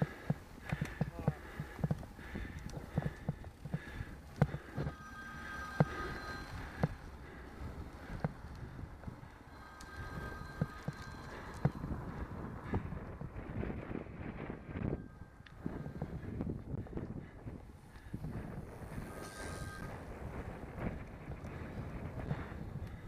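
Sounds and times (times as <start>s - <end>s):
wind rushing over microphone: 1.8s - 23.0s.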